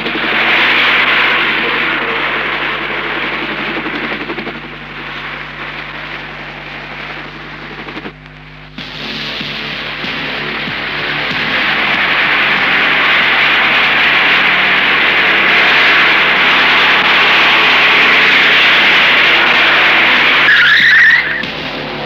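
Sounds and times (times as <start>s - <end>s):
cars engine and tyre rush: 9.4s - 22.0s
tyre squeal: 12.0s - 21.5s.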